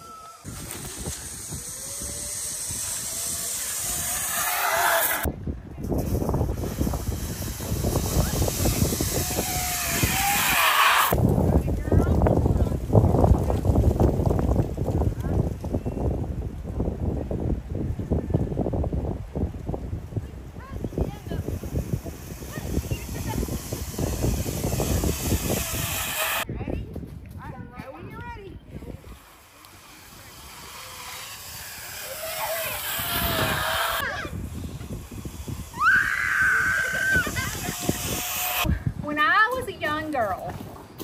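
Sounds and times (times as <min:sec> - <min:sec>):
zip line trolley whirring on cable: 0:00.0 - 0:11.2, 0:20.2 - 0:26.5, 0:28.7 - 0:39.4
children's voices: 0:29.8 - 0:34.6.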